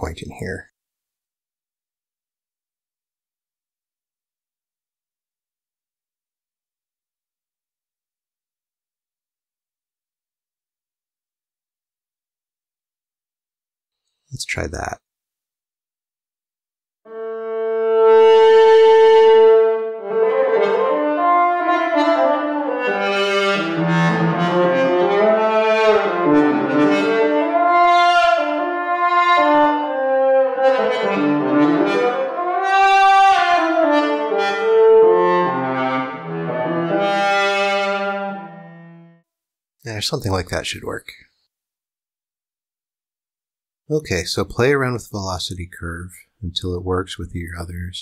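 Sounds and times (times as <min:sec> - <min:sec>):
synthesized cello melody: 0:17.1 - 0:39.1.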